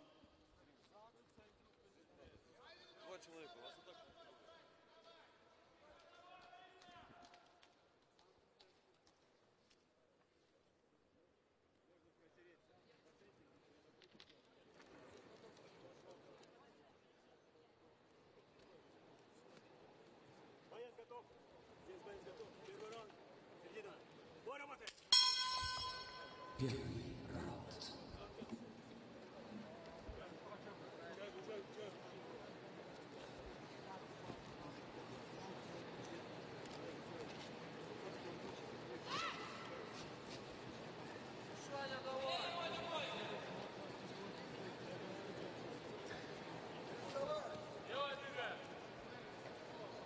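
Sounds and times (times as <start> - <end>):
low background noise: 0.0 - 50.0.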